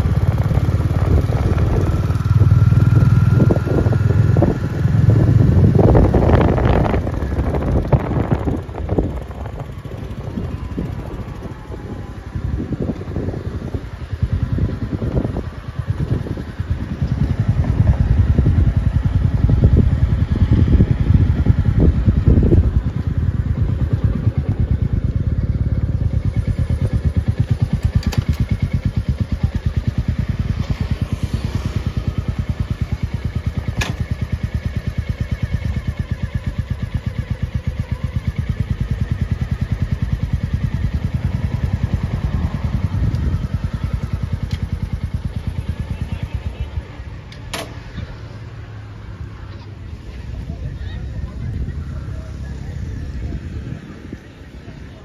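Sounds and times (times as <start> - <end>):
motorcycle engines running: 0.0 - 55.0.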